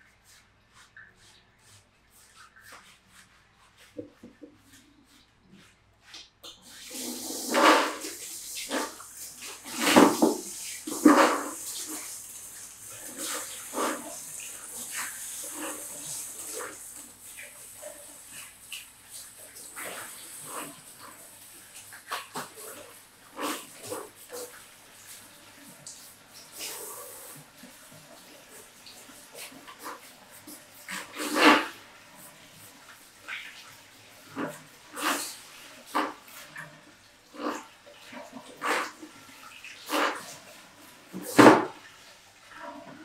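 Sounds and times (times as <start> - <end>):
shower sprayer water hissing: 0.0 - 43.0.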